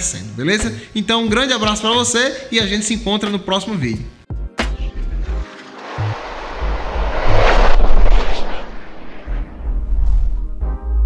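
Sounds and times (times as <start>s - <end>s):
whoosh: 5.8s - 10.6s
low rumble: 5.8s - 10.8s.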